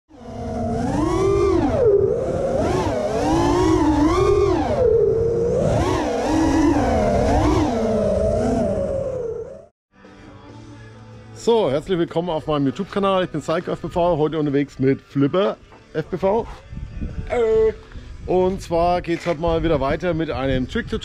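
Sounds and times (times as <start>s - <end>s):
drone motors whining: 0.1s - 9.7s
rushing noise from propellers: 0.1s - 9.7s.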